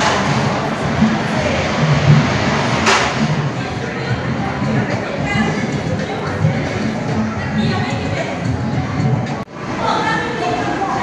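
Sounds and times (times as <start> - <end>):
background voices echoing: 0.0 - 11.0
sharp knock: 2.8 - 3.3.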